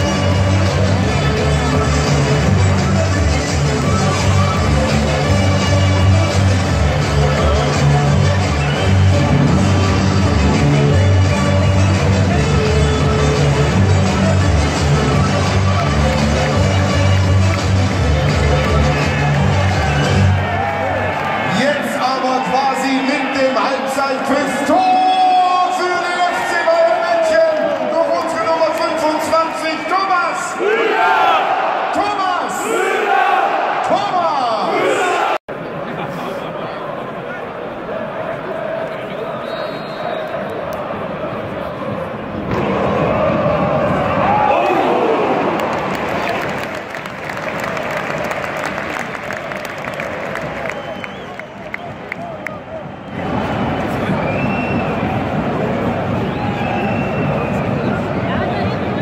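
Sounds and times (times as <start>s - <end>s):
crowd noise: 0.0s - 59.0s
stadium crowd singing and chanting: 34.7s - 44.9s.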